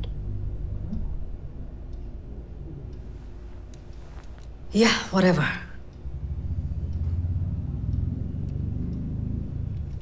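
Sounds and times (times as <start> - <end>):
low rumble with fine flutter: 5.8 - 10.0.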